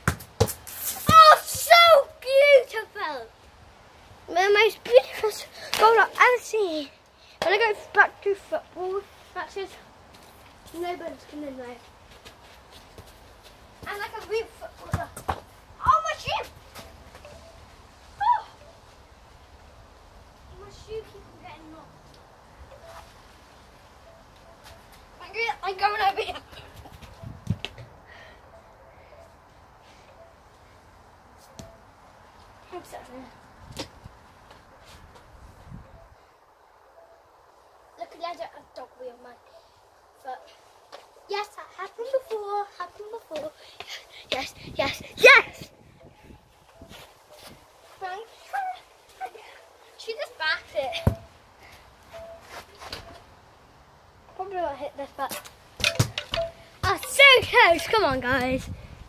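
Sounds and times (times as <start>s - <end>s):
child calling out: 1.0s - 3.2s, 15.8s - 16.4s, 18.2s - 18.6s.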